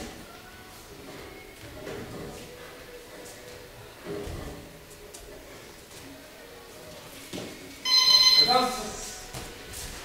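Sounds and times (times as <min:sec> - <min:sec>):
round-timer buzzer: 0:07.8 - 0:08.8.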